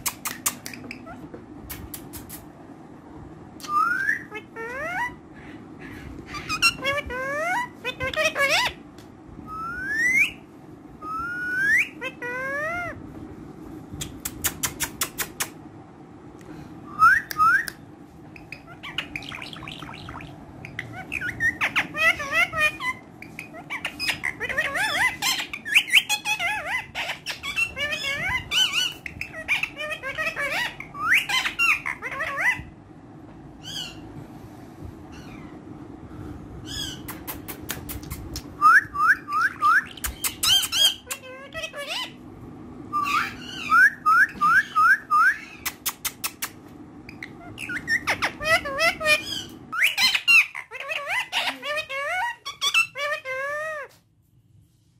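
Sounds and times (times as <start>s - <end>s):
parakeet squawking and chirping: 0.0s - 2.2s, 3.6s - 8.8s, 9.5s - 13.0s, 17.0s - 32.8s, 33.6s - 34.1s, 35.1s - 35.6s, 36.6s - 42.3s, 42.9s - 54.0s.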